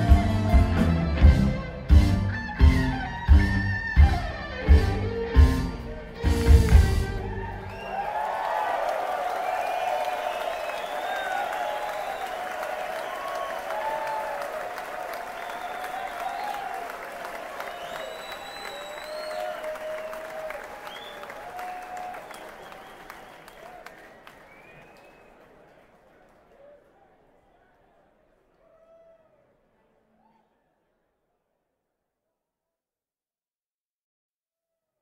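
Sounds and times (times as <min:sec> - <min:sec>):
audience whistling: 0:05.5 - 0:26.8
audience applauding and cheering: 0:05.8 - 0:27.2.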